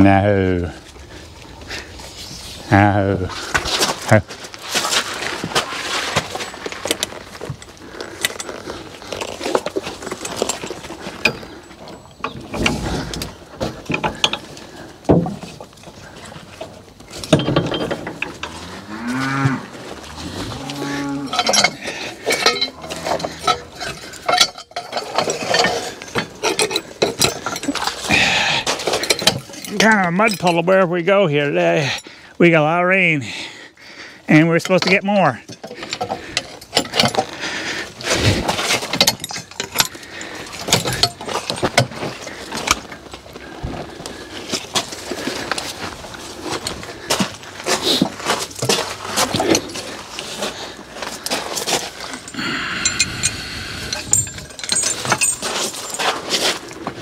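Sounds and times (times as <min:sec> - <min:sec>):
harness chains clinking: 0:06.2 - 0:13.2, 0:20.8 - 0:32.1, 0:34.3 - 0:43.1, 0:47.4 - 0:56.9.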